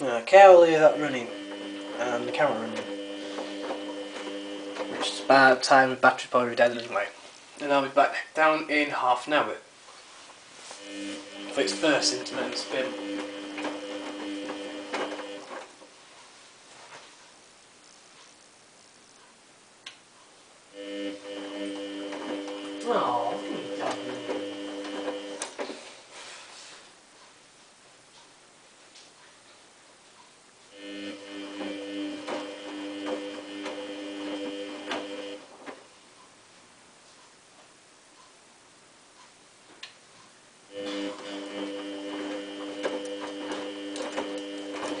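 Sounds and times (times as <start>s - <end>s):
washing machine motor whine: 0.0s - 5.8s, 10.6s - 15.8s, 20.7s - 25.7s, 30.7s - 35.8s, 40.7s - 45.0s.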